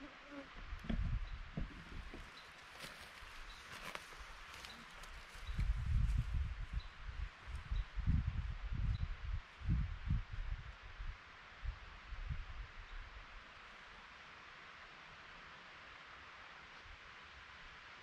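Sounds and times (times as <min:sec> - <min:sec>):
wind hissing in conifers: 0:00.0 - 0:18.0
wind buffeting microphone: 0:00.6 - 0:02.3, 0:05.3 - 0:12.7.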